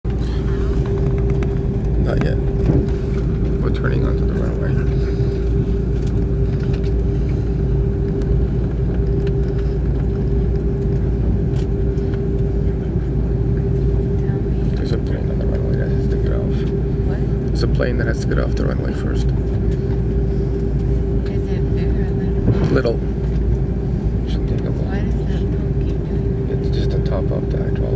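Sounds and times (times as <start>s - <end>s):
aircraft engines low rumble: 0.0s - 27.9s
steady mid-pitched hum: 0.0s - 27.9s.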